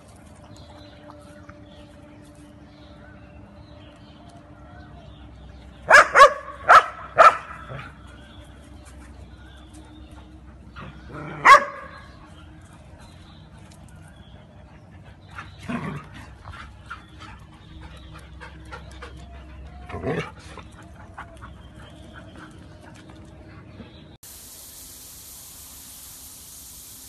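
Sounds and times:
dog barking: 5.9s - 7.9s, 11.4s - 12.1s.

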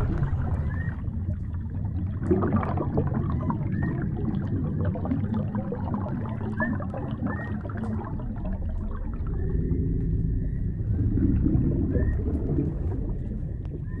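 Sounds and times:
low underwater rumble: 0.0s - 14.0s
noisy wash: 0.0s - 14.0s.

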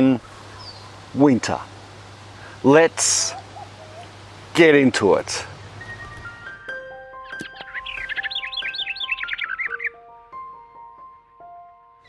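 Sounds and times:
bird chirps: 0.2s - 1.0s, 7.2s - 10.0s.

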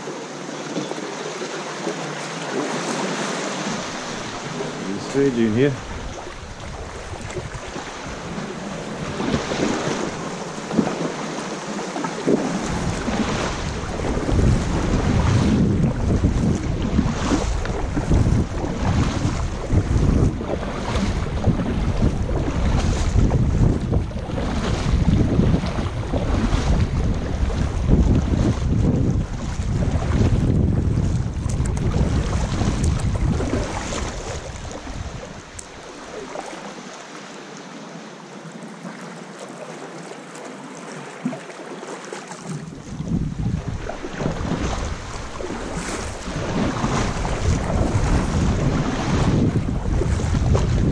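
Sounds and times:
paddle strokes splashing water: 0.0s - 50.9s
wind rumble on microphone: 3.6s - 11.3s, 12.1s - 36.5s, 42.5s - 50.9s.

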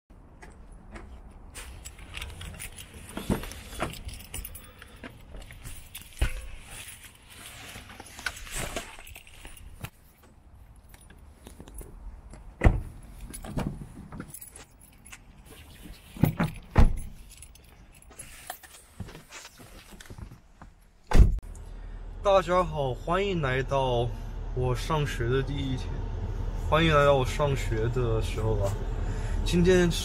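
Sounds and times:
car keys jingling: 1.7s - 7.3s, 10.7s - 19.0s.

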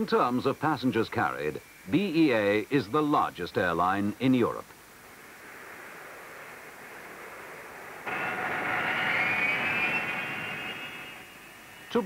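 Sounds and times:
high engine whine: 0.0s - 12.0s
jet engine rushing hiss: 4.8s - 12.0s.

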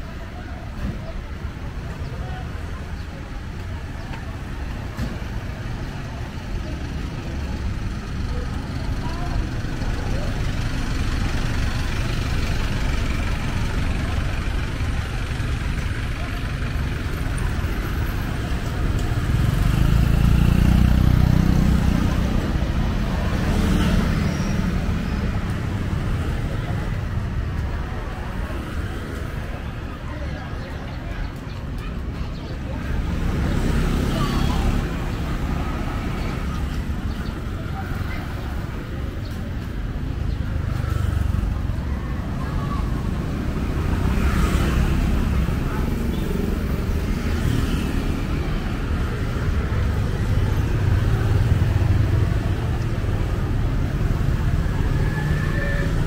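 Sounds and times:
street traffic: 0.0s - 56.0s.

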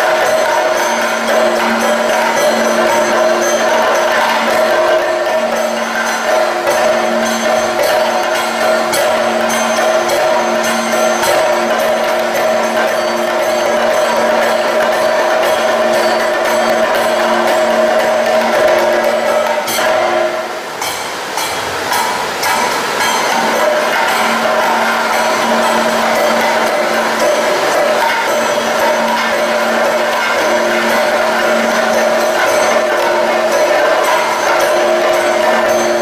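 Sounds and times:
cymbal-like jingling: 0.0s - 36.0s
drum ensemble playing: 0.0s - 36.0s.

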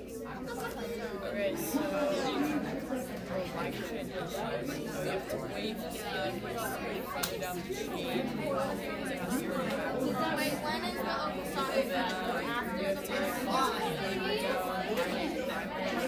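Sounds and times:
students chattering: 0.0s - 16.0s.

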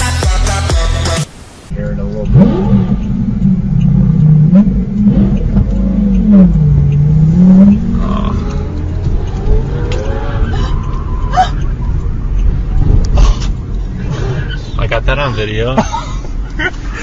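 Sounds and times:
car engine revving hard: 1.8s - 15.7s.

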